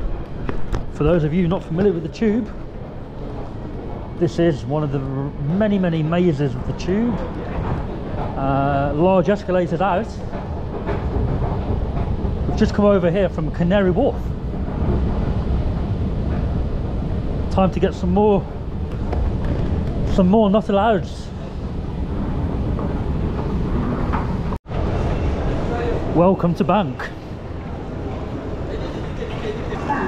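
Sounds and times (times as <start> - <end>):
escalator rumble: 0.0 - 30.0
underground station background noise: 0.0 - 30.0.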